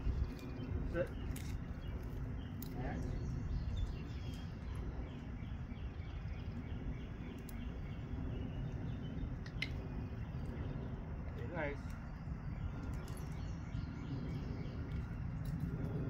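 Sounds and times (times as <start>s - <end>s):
steady low rumble: 0.0s - 16.0s.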